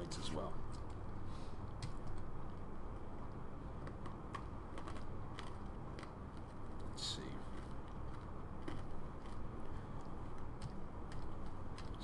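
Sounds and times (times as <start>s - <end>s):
low room hum: 0.0s - 12.0s.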